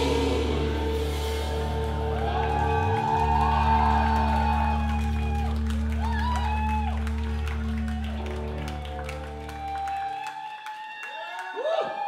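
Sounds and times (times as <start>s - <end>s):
low bass note: 0.0s - 3.4s
live band music: 0.0s - 3.8s.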